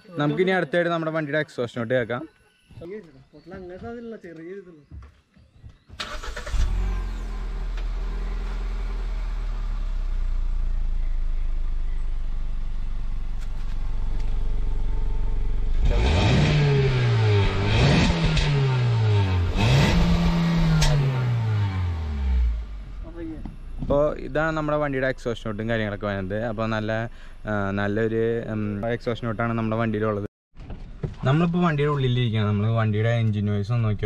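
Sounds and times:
car engine revving: 6.0s - 23.9s
car engine starting and idling: 6.0s - 29.4s.

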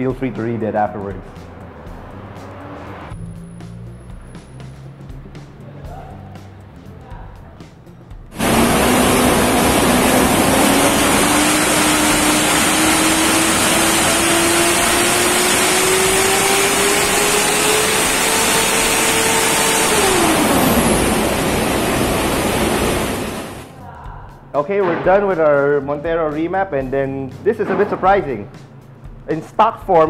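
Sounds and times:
diesel engine revving under load: 8.3s - 23.7s.

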